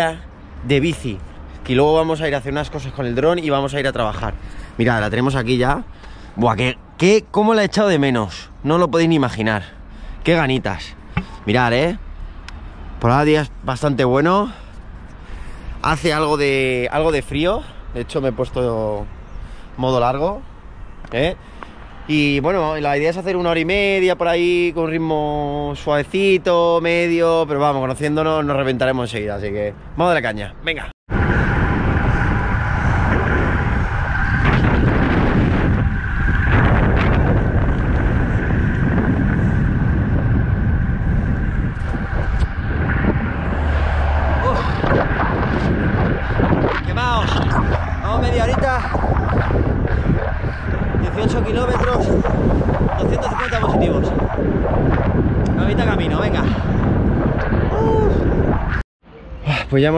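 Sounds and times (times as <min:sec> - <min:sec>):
wind buffeting microphone: 0:31.1 - 0:58.8.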